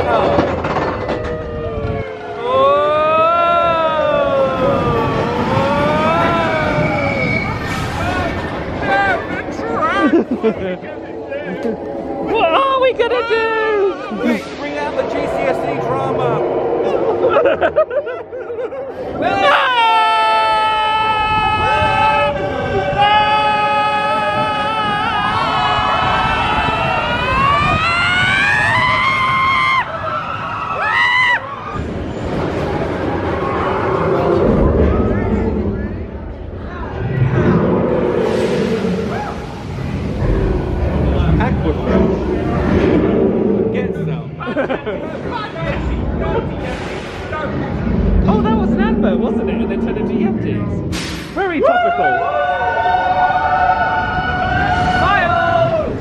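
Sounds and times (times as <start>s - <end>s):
siren-like wail of roller coaster: 0.8s - 8.7s, 19.4s - 36.0s, 51.6s - 56.0s
riders screaming: 1.2s - 8.5s.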